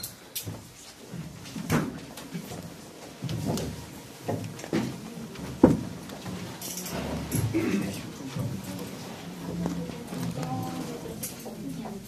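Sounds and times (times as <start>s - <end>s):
knocks and bumps in a room: 0.4s - 7.7s.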